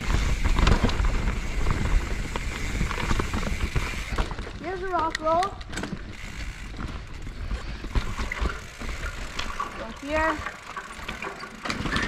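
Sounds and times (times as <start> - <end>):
wind rumble on microphone: 0.0 - 4.6
bike clicks and rattles: 0.0 - 12.0
bike rolling on dirt trail: 0.0 - 12.0.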